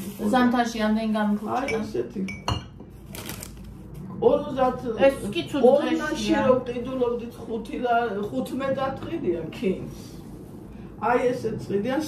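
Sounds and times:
woman speaking: 0:00.0 - 0:02.3.

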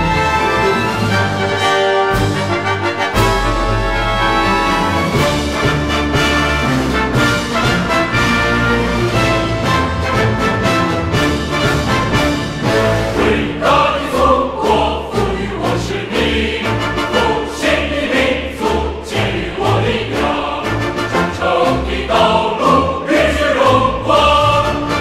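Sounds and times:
large mixed choir singing: 0:00.0 - 0:05.8, 0:12.4 - 0:25.0.

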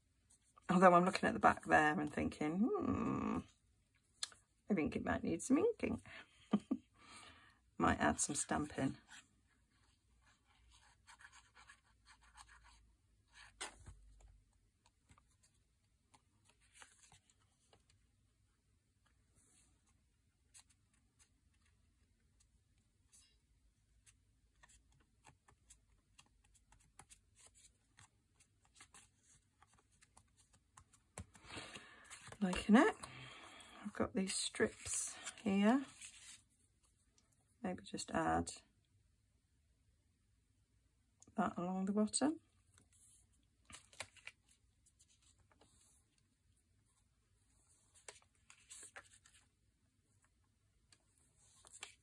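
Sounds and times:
paper rustling and scratching: 0:24.0 - 0:33.1, 0:34.3 - 0:36.5, 0:42.8 - 0:46.2, 0:46.8 - 0:49.5, 0:50.9 - 0:52.0.

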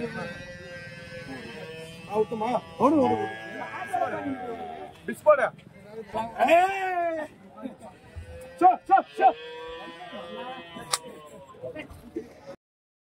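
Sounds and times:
cow mooing: 0:00.0 - 0:05.1, 0:07.9 - 0:11.7
voices: 0:00.0 - 0:12.6.

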